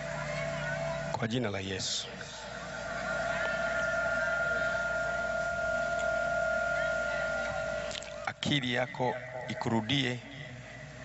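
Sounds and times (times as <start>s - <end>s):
steady high-pitched tone: 0.0s - 11.0s.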